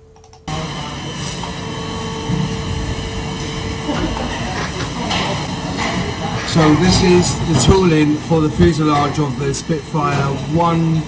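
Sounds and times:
machinery hum with steady tones: 0.0 - 11.0.

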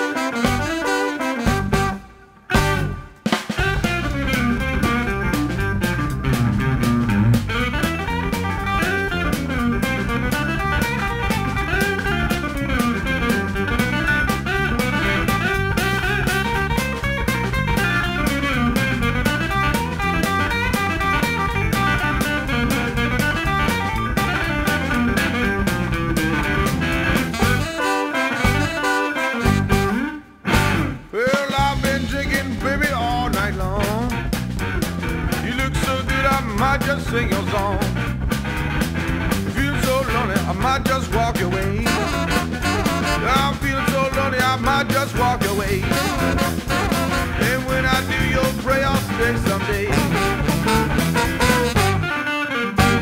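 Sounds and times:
bass guitar: 0.0 - 53.0
drum kit: 0.0 - 53.0
lead guitar: 0.0 - 53.0.

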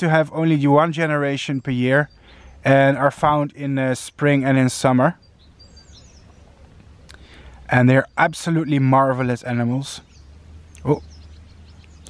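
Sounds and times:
bird chirping: 0.0 - 12.0
outdoor background noise: 0.0 - 12.0.

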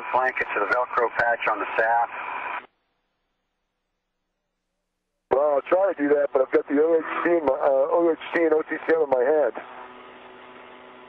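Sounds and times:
man's voice over radio: 0.0 - 2.2, 5.3 - 9.6
radio channel hiss: 0.0 - 2.7, 5.3 - 9.6.

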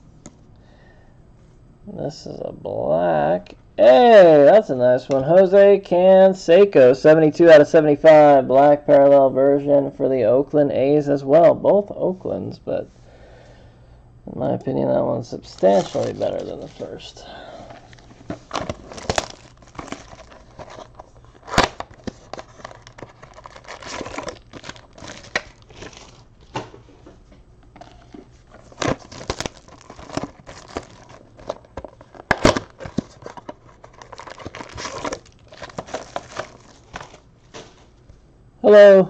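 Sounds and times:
plastic shrink-wrap crinkling: 15.4 - 17.0, 17.7 - 26.6, 27.7 - 38.0.

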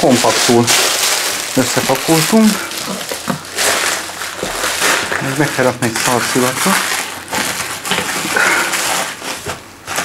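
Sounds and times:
clothes and fabric rustling: 0.0 - 10.0.

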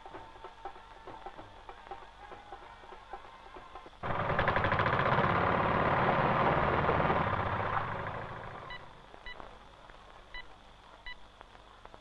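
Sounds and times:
engine running with fast pulse: 4.0 - 9.0.

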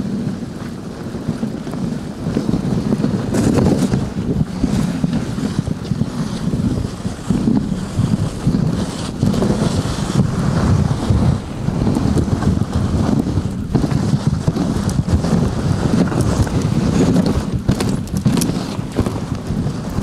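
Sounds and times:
sled runners scraping snow: 0.0 - 20.0
wind buffeting microphone: 0.0 - 20.0.

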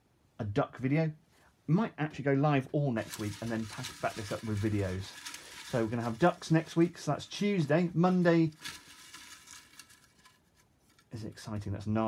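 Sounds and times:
paper slips rustling: 3.0 - 11.3.

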